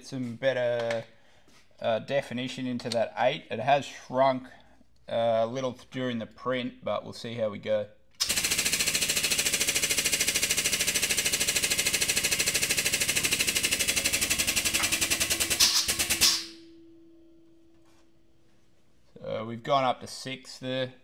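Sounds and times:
hydraulic press pump chattering: 8.2s - 16.6s
faint steady hum: 16.5s - 19.7s.

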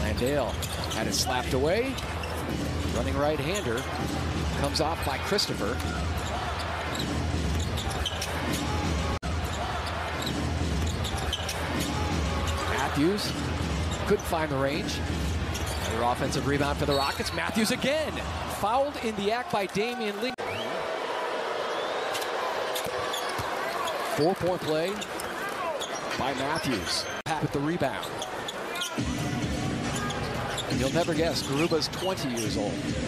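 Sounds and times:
arena crowd noise: 0.0s - 33.0s.

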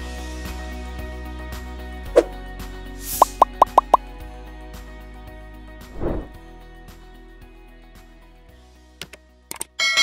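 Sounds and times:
background music: 0.0s - 10.0s
rising pop sound effects: 3.2s - 4.0s
whoosh sound effect: 6.0s - 6.4s.

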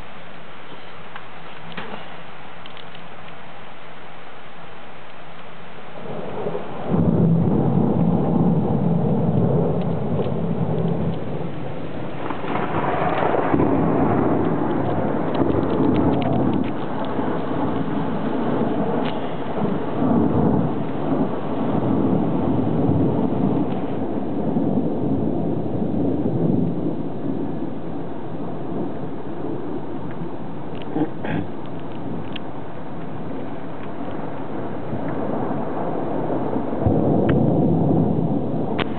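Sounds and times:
heavy rain: 0.0s - 38.9s
thunder rumbling: 5.7s - 38.9s.

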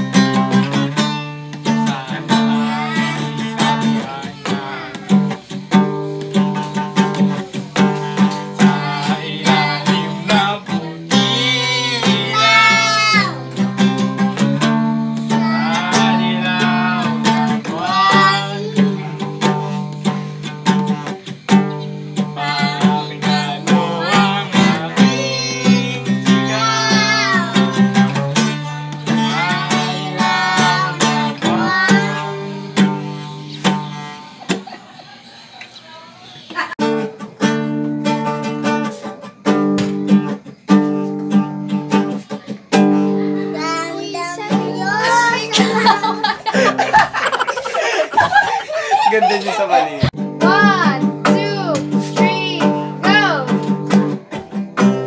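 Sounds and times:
boy singing: 0.0s - 5.6s, 7.3s - 13.8s, 15.0s - 34.2s, 42.1s - 47.7s, 50.4s - 53.7s
acoustic guitar strumming chords: 0.0s - 35.1s, 36.8s - 48.9s, 49.9s - 55.0s.

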